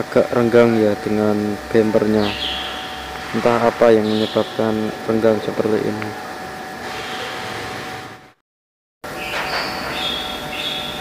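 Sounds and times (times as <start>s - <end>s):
faint continuous hum: 0.0s - 8.3s.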